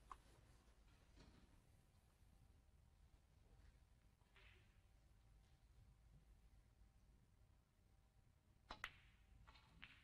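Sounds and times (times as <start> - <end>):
snooker balls clicking: 8.6 - 10.0.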